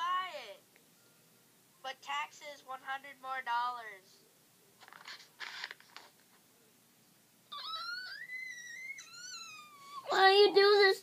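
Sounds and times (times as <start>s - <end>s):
child whining wail: 7.5s - 10.2s.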